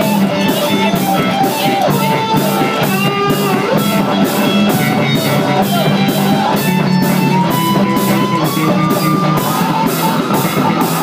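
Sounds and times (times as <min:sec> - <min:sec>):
cymbal beat: 0:00.0 - 0:11.0
drum kit: 0:00.0 - 0:11.0
electric guitars: 0:00.0 - 0:11.0.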